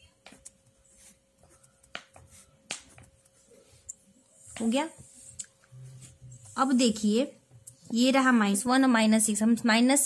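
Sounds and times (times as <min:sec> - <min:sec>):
pen ticking on paper: 0:00.2 - 0:04.0.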